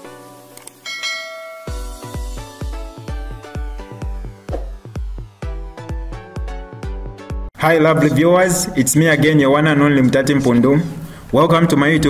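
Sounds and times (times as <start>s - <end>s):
light plucked music: 0.1s - 7.2s
notification bell ding: 0.8s - 2.2s
heavy bass electronic beat: 1.7s - 7.5s.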